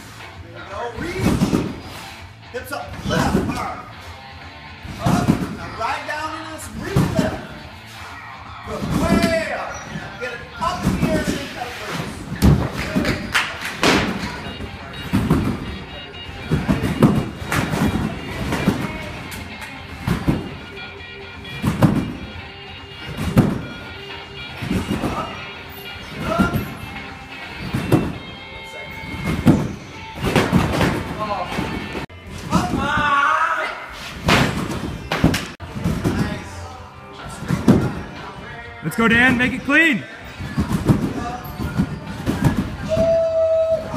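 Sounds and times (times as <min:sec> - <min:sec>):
music playing: 0:00.0 - 0:43.9
trampoline bed thumping: 0:01.0 - 0:01.9, 0:04.8 - 0:05.8, 0:06.7 - 0:07.6, 0:08.7 - 0:33.3, 0:34.2 - 0:38.3, 0:40.3 - 0:43.9.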